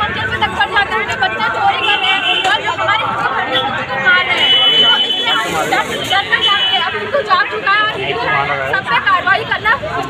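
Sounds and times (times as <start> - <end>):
people chattering: 0.0 - 10.0
young woman talking into microphone: 0.0 - 10.0.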